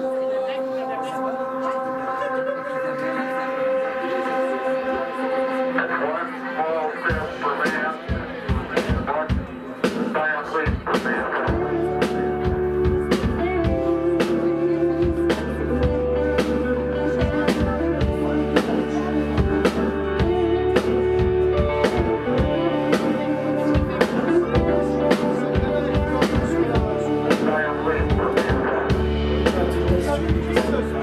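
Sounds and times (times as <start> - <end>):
electric guitar sustained notes: 0.0 - 8.7, 11.2 - 31.0
drum kit beat: 7.0 - 31.0.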